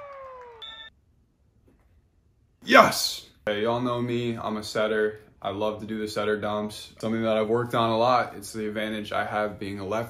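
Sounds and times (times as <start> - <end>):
whistle blast: 0.4 - 0.9.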